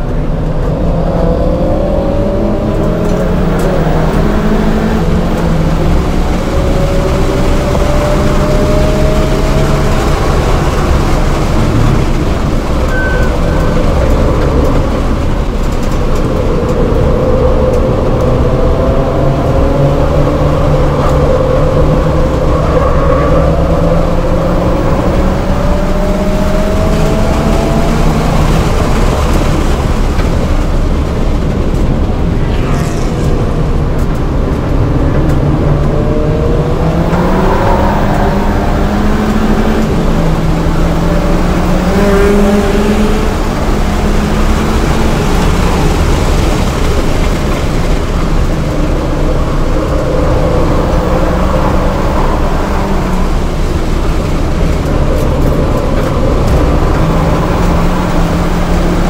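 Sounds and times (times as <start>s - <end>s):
car engine accelerating: 0.0s - 59.0s
tyre and wind noise: 0.0s - 59.0s.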